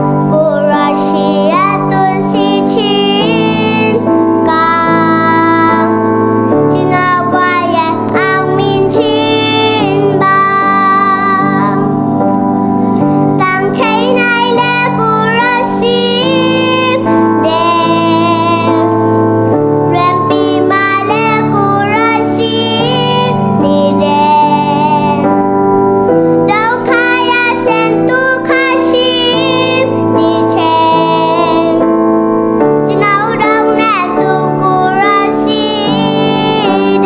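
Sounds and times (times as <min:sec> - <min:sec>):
girl singing: 0:00.0 - 0:12.2, 0:13.0 - 0:25.4, 0:26.2 - 0:32.0, 0:32.8 - 0:37.0
keyboard chords: 0:00.0 - 0:37.0.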